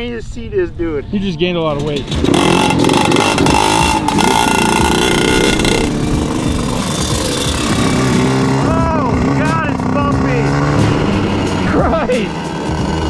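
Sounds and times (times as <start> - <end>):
kart engines revving: 1.6 - 13.0.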